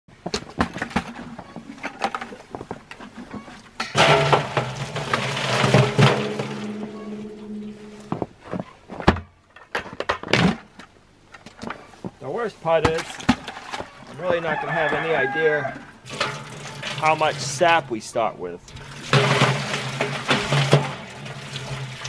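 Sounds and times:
buckets clunking: 0.6s - 8.3s, 12.8s - 14.9s, 16.0s - 22.0s
liquid pouring into metal pot: 16.0s - 17.9s, 18.6s - 22.0s.

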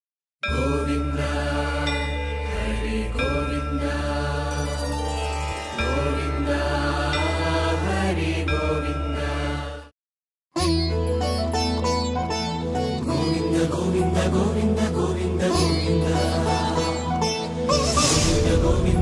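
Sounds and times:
chanted mantra: 0.5s - 4.8s.

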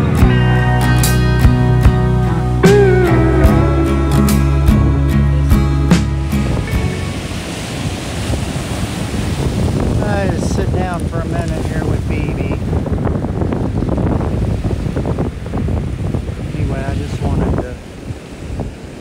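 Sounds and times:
slide guitar music: 0.0s - 7.4s
wind buffeting microphone: 1.4s - 19.0s
surf breaking on cobble beach: 1.6s - 19.0s.

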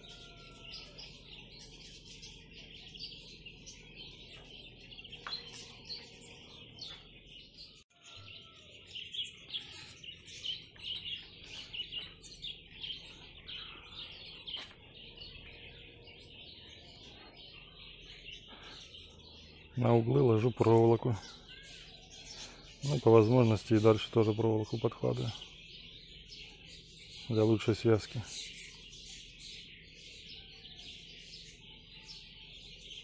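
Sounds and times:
songbirds chirping: 0.0s - 33.0s.

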